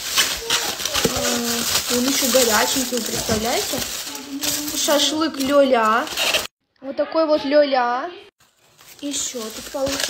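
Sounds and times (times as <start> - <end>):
aluminium foil crinkling: 0.0 - 6.5, 8.4 - 10.0.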